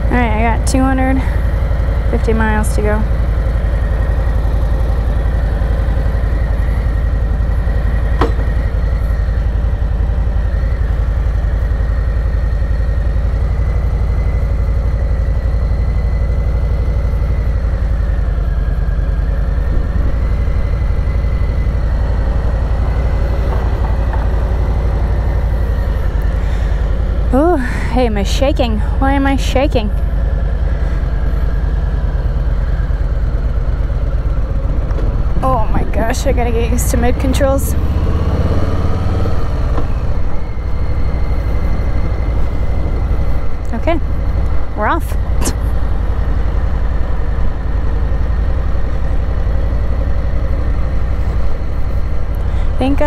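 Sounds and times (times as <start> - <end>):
motorcycle engine idling: 0.0 - 38.2, 39.3 - 53.0.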